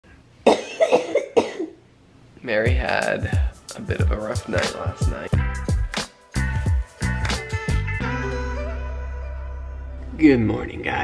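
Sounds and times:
woman coughing: 0.5s - 1.8s.

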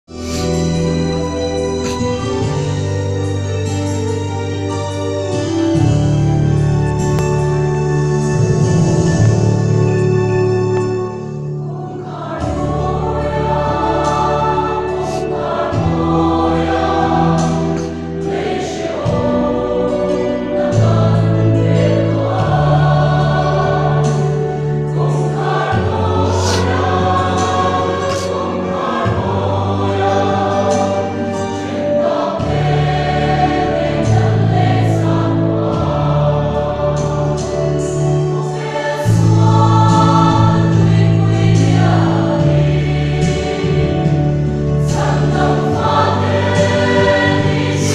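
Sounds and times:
church choir singing a hymn: 0.2s - 47.9s.

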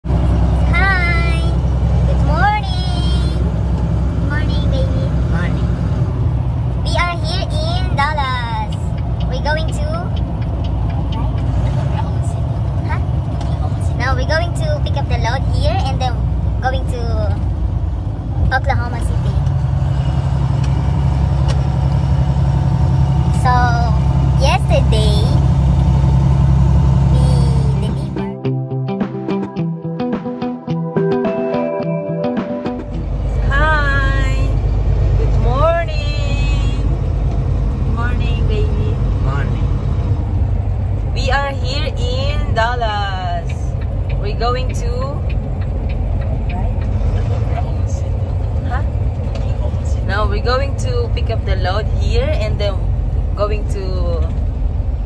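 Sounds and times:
truck engine drone: 0.0s - 55.0s
woman talking: 27.1s - 28.4s, 33.4s - 34.6s, 35.2s - 37.0s, 37.9s - 39.7s, 41.1s - 45.3s, 46.4s - 54.4s.

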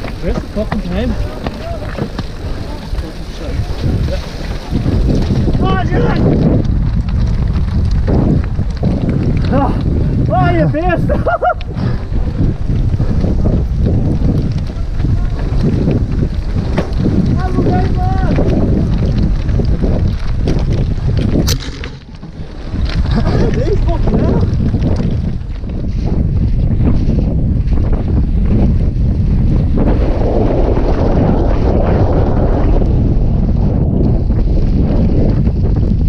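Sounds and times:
bike knocking on rough trail: 0.0s - 36.0s
wind rumble on microphone: 0.0s - 36.0s
riders whooping: 1.1s - 6.4s, 9.4s - 19.1s.

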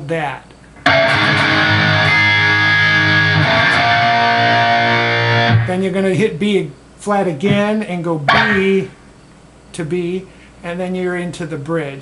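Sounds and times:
electric guitar chords: 0.8s - 5.8s, 8.3s - 9.2s.

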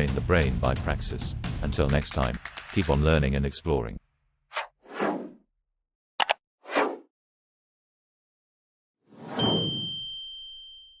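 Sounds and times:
bright bell ding: 9.4s - 11.0s.

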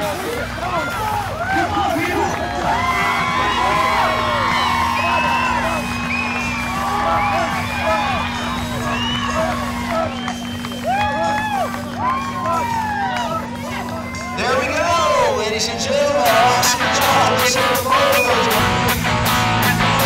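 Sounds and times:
crowd cheering and whooping: 0.0s - 20.0s
steady low hum: 0.1s - 15.4s.

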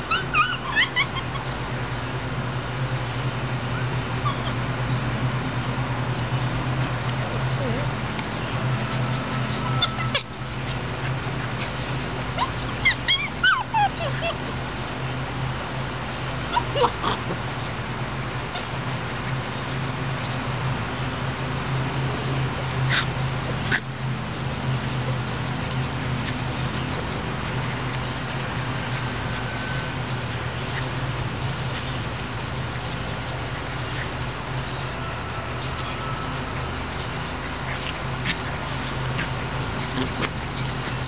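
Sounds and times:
puppies yipping and whimpering: 0.0s - 6.0s, 8.7s - 19.4s, 22.6s - 23.9s, 24.8s - 41.0s
steady low hum: 17.2s - 41.0s.

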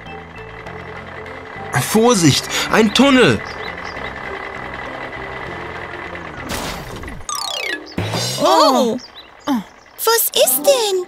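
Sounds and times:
cartoon engine hum: 0.0s - 11.0s.

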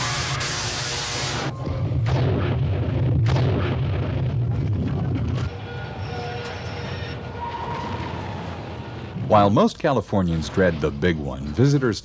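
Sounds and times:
loud low rumble: 1.5s - 6.1s.

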